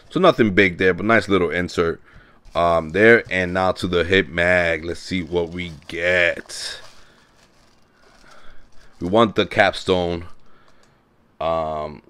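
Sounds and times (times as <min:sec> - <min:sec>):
tissue paper rustling: 0:02.4 - 0:10.6.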